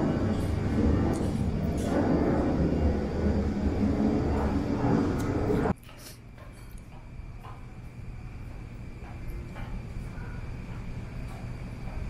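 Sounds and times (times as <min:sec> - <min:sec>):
airplane flying overhead: 0:00.0 - 0:06.2.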